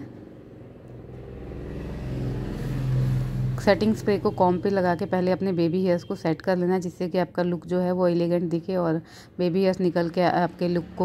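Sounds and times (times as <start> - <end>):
engine-like droning rumble: 0.1 - 5.7.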